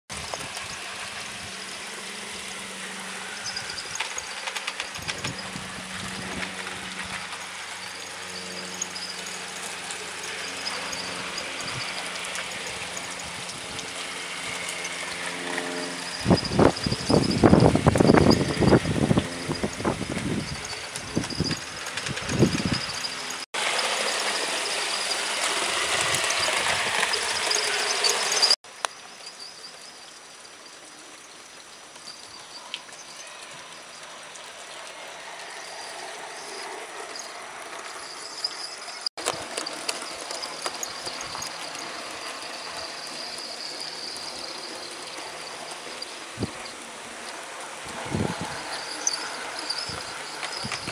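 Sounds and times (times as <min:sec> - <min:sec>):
model locomotive motor hum: 0:00.1 - 0:50.9
thin high squeal: 0:01.4 - 0:30.2, 0:35.4 - 0:46.9, 0:48.0 - 0:50.9.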